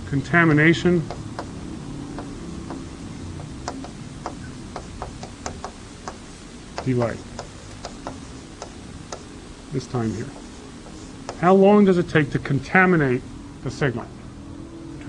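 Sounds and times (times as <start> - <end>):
chalk clicking on blackboard: 1.0 - 9.3, 10.2 - 11.5.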